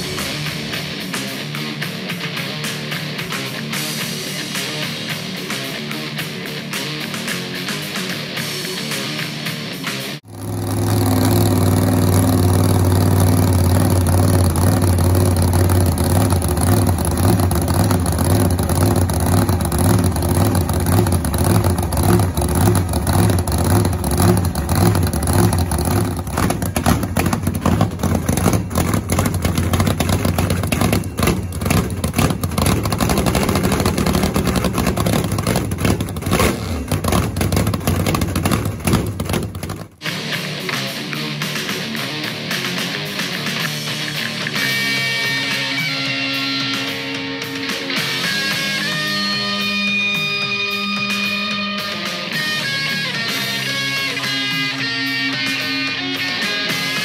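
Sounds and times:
drag racing engine idling: 10.2s - 40.0s.

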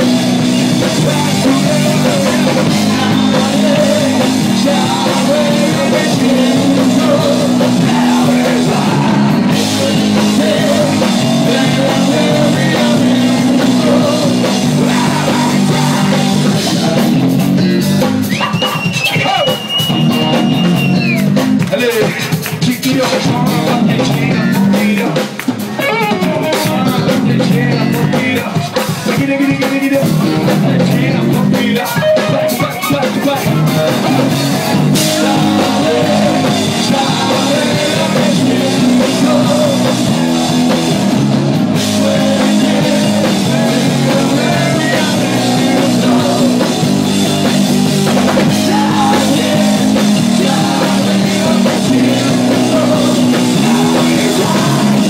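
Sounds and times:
bass guitar: 0.0s - 55.0s
drum kit: 0.0s - 55.0s
electric guitar: 0.0s - 55.0s
lead singer: 0.0s - 55.0s
live rock band playing: 0.0s - 55.0s.

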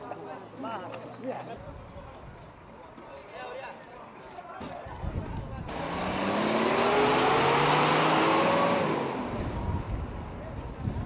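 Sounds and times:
pickup truck accelerating past: 5.7s - 9.9s.

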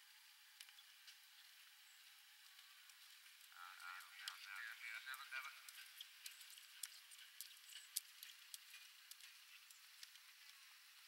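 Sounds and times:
faint steady hiss: 0.0s - 11.0s
soft ticks: 0.6s - 10.8s
faint voices: 3.5s - 5.9s.

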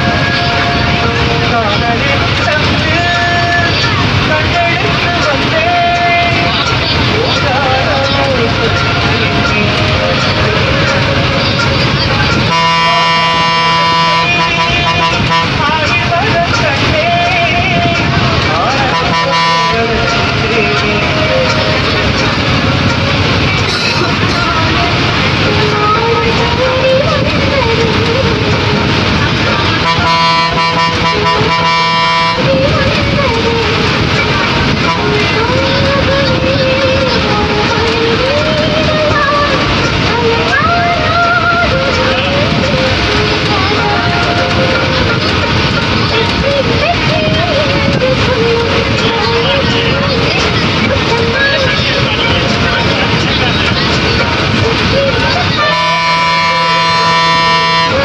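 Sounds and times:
bus engine and road noise: 0.0s - 58.0s
bus horn blast: 0.0s - 58.0s
music with singing voice: 0.0s - 58.0s.

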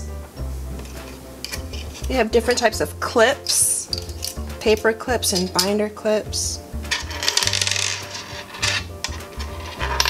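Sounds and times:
background music: 0.0s - 10.0s
metal clips clinking on table: 0.8s - 2.7s, 3.4s - 5.8s, 6.9s - 10.0s.

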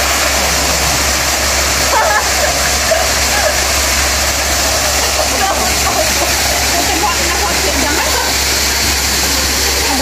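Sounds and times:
loud steady hiss: 0.0s - 10.0s
distant people talking: 4.6s - 10.0s.

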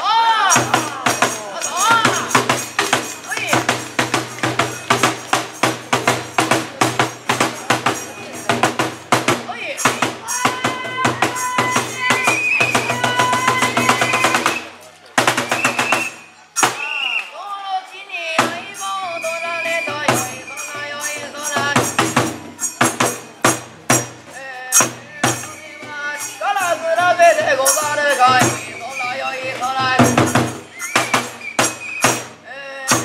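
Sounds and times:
drum beaten fast: 0.5s - 16.9s, 18.4s - 33.0s
jangling metal percussion: 0.5s - 17.2s, 17.8s - 33.0s
person chanting: 17.3s - 22.2s.

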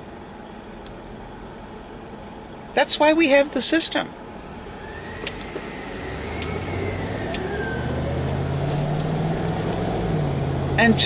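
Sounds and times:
faint high whine: 0.0s - 9.4s
bus engine approaching: 0.0s - 11.0s.

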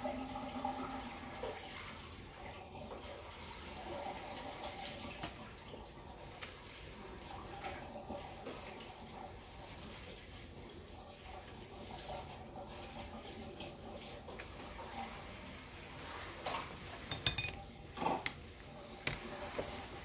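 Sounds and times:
faint running water: 0.0s - 20.0s.

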